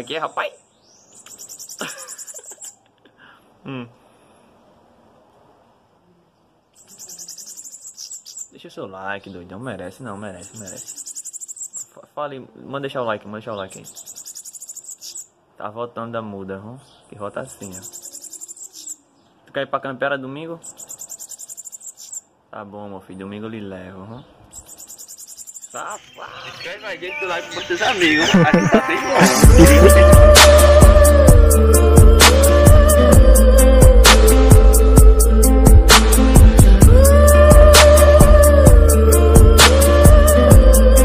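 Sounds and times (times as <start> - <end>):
bird singing rapid high notes: 0.0 - 2.8, 6.8 - 9.4, 10.0 - 12.0, 13.5 - 15.4, 17.4 - 19.4, 20.6 - 22.3, 24.5 - 30.6
voices: 25.7 - 34.2
music: 28.0 - 41.0.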